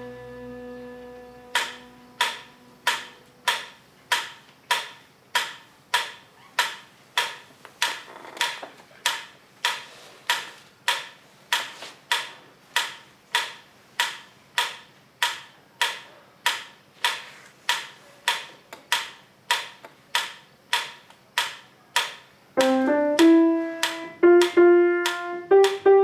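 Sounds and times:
upright piano notes: 0.0s - 3.5s, 22.6s - 26.0s
steady ticking: 1.0s - 26.0s.

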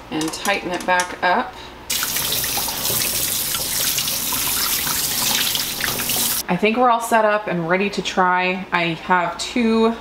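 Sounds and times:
faucet water spraying: 1.9s - 6.4s.

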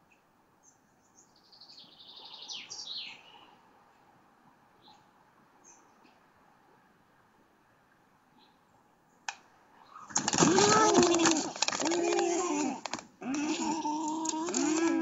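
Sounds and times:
rustling: 9.8s - 15.0s.

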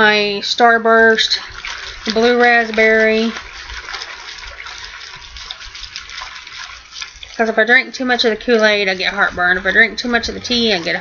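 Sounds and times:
water sloshing in plastic bottle: 0.9s - 11.0s.

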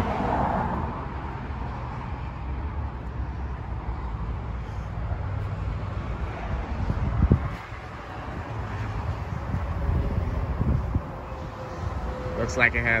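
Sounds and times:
outdoor lot ambience: 0.0s - 13.0s
wind buffeting microphone: 5.2s - 13.0s.

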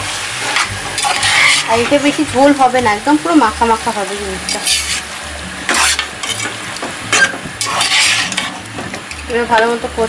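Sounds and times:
meat sizzling: 0.0s - 10.0s
spatula scraping a pot: 0.6s - 1.8s, 4.4s - 8.7s.

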